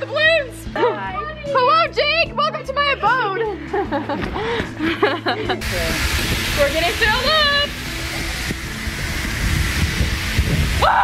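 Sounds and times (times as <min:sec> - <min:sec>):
rushing air with low rumble: 0:05.6 - 0:11.0.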